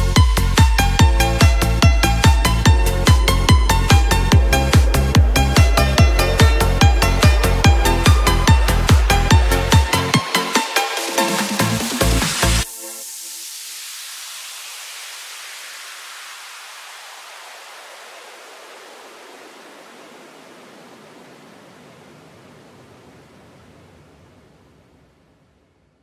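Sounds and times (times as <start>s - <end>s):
white-noise sweep: 0.0s - 25.2s.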